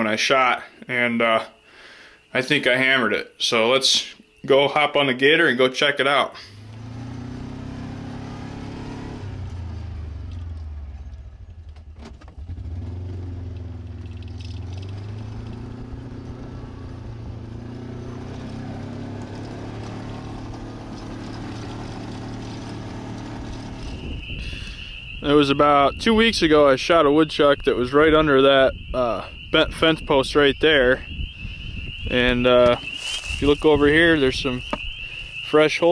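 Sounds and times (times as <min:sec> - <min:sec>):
utility vehicle engine running: 0:06.5 - 0:24.6.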